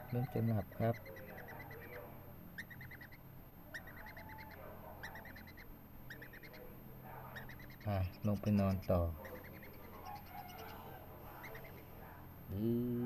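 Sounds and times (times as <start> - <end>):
parrot chick soft chirps: 0.0 - 12.5.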